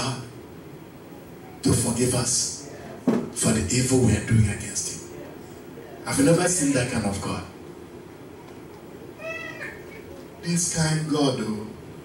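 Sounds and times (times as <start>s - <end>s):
high-pitched cry: 9.2s - 10.2s.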